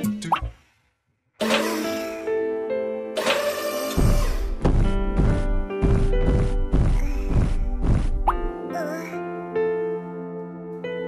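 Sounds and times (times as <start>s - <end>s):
cartoon background music: 0.0s - 0.6s, 1.4s - 11.0s
wavering cartoon vocal sound: 1.4s - 2.3s, 3.2s - 4.5s.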